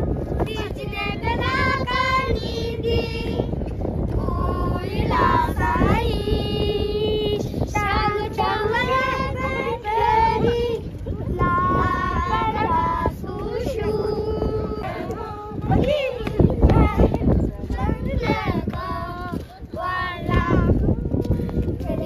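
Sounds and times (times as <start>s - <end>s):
wind rumbling on microphone: 0.0s - 22.0s
women singing: 0.4s - 3.5s, 4.2s - 22.0s
children singing together: 4.2s - 17.1s.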